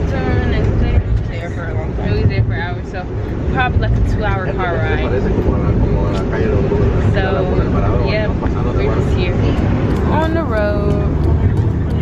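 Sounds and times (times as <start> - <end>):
van road and engine rumble: 0.0 - 12.0.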